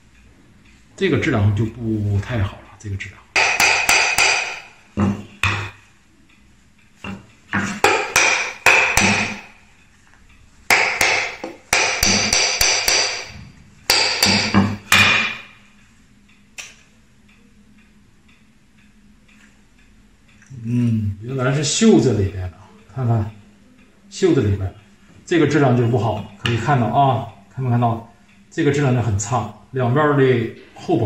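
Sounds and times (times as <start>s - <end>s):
hammer striking steel chisel: 3.4s - 5.8s, 7.0s - 9.6s, 10.7s - 15.6s.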